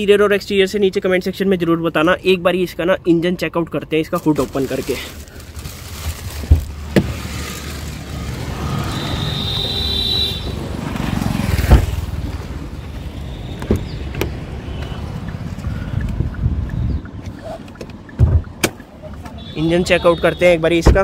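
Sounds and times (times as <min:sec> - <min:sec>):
street traffic rumble: 0:00.0 - 0:21.0
handling noise: 0:04.2 - 0:08.5
car door shutting: 0:06.5 - 0:07.2, 0:11.6 - 0:12.0, 0:13.6 - 0:14.4, 0:17.8 - 0:18.8.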